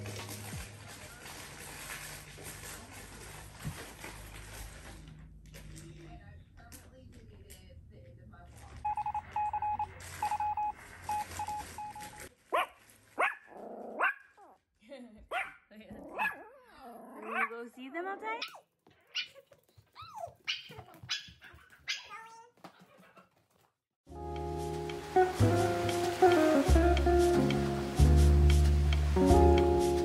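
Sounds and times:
small dog yipping and barking: 12.6s - 14.3s, 15.3s - 16.6s, 17.2s - 17.6s, 18.4s - 19.4s, 20.0s - 22.4s.

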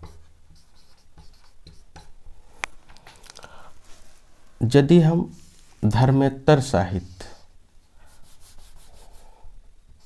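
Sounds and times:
marker pen writing on whiteboard: 0.0s - 3.2s.

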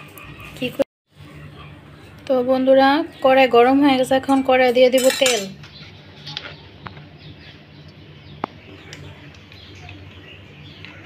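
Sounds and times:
kitchen utensils clinking: 4.0s - 5.8s.

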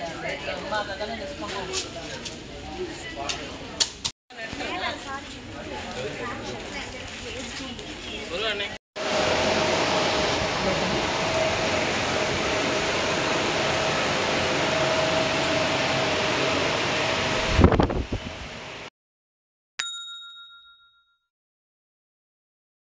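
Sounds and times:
loud rush of air: 9.0s - 18.7s.

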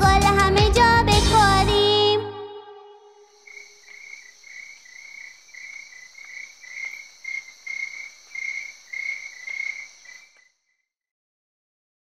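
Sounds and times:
high-pitched insect trill: 3.2s - 10.4s
crickets chirping: 3.2s - 10.6s.

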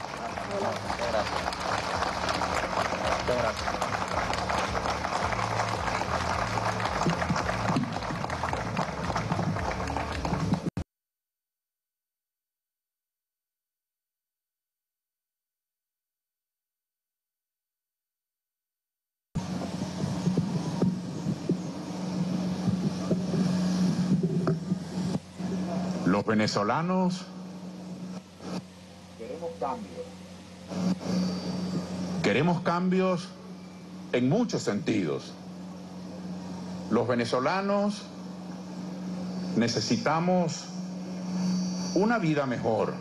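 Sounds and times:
music playing: 0.0s - 10.7s
many hands clapping: 0.0s - 10.8s
steady low hum: 0.0s - 10.8s, 19.4s - 43.0s
traffic noise: 0.0s - 10.8s, 19.4s - 43.0s.

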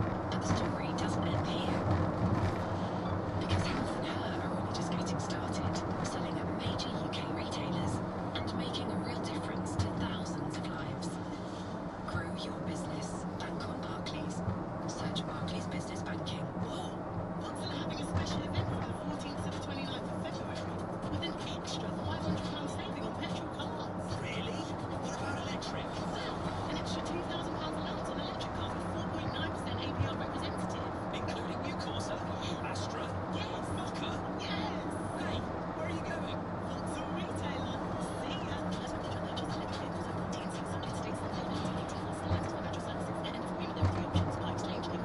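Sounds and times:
car engine drone: 0.0s - 45.0s
faint radio speech and music: 0.0s - 45.0s.

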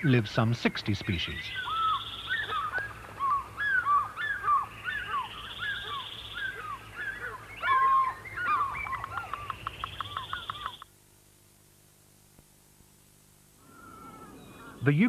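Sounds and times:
birds chirping: 0.0s - 10.9s, 13.6s - 15.0s
buzzy bird trill: 1.0s - 10.9s.

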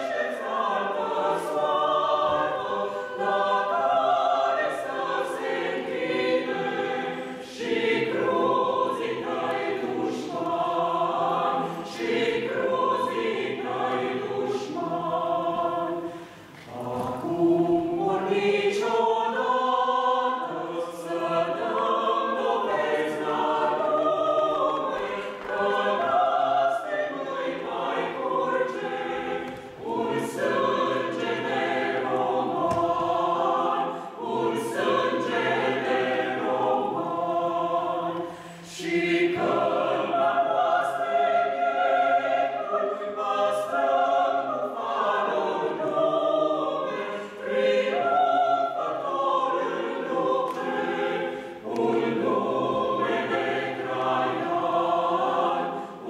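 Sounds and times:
mixed choir singing a cappella: 0.0s - 56.0s.

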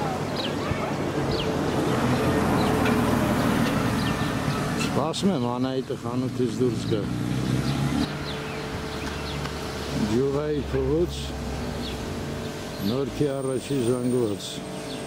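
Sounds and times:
car passing: 0.8s - 14.2s.

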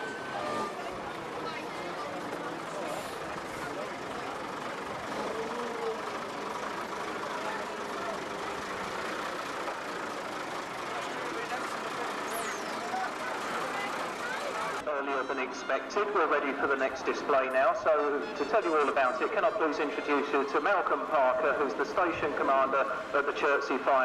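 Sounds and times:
people talking: 0.0s - 6.2s, 7.1s - 8.8s, 10.8s - 24.0s
truck engine driving past: 0.0s - 14.9s.

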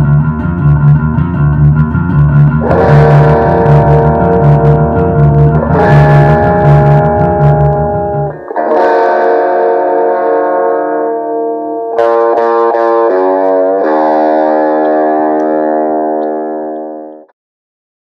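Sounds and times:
pulsing bass line: 0.0s - 8.4s
guitar ringing chords: 0.0s - 17.3s.

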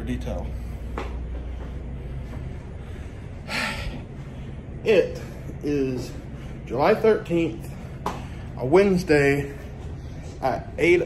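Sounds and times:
low steady hum: 0.0s - 11.0s
man speaking: 4.8s - 7.8s, 10.4s - 11.0s.

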